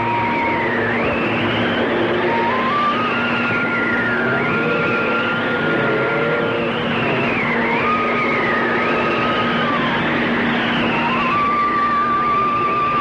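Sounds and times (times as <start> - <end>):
dense noisy wash: 0.0 - 13.0
steady drone: 0.0 - 13.0.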